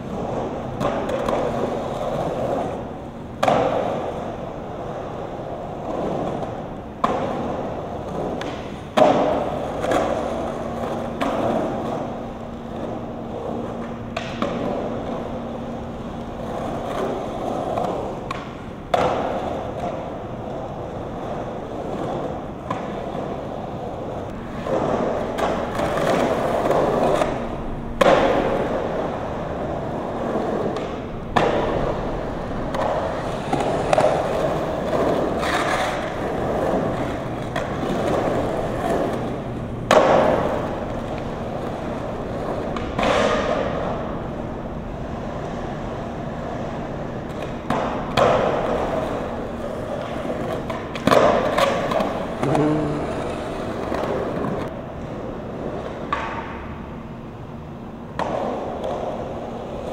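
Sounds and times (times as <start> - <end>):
skateboard clacking on concrete: 0.0 - 44.6, 45.2 - 56.8, 58.1 - 59.9
skateboard wheels rolling on concrete: 0.0 - 59.9.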